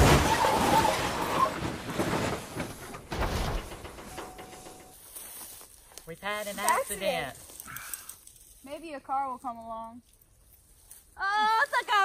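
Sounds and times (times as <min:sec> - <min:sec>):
car skidding and scraping: 0:00.0 - 0:03.3
car crash impact: 0:00.0 - 0:04.9.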